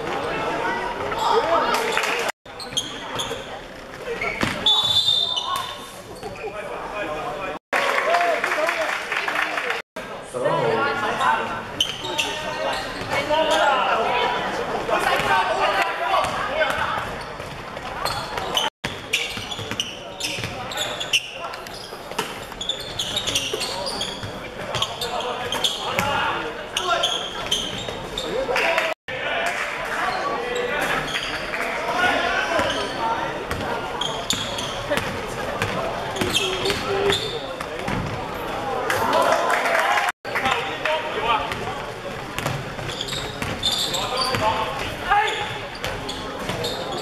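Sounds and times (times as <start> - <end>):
echoing voices in a hall: 0.0 - 47.0.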